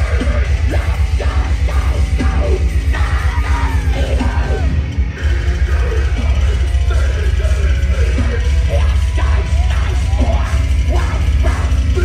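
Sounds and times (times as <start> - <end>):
harsh screamed vocal: 0.0 - 6.9
distorted guitars: 0.0 - 12.0
pounding drum beat: 0.0 - 12.0.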